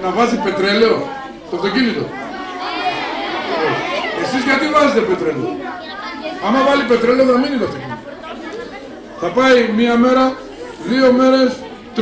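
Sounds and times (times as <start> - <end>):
children calling out: 0.6 - 9.6.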